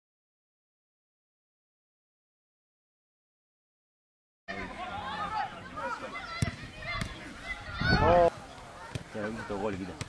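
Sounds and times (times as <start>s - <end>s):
players calling out: 4.5s - 10.0s.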